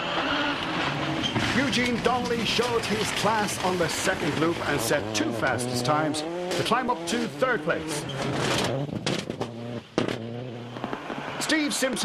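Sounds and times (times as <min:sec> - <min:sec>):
engine sharp crack: 0:00.0 - 0:12.0
rally car engine high revs: 0:00.0 - 0:12.0.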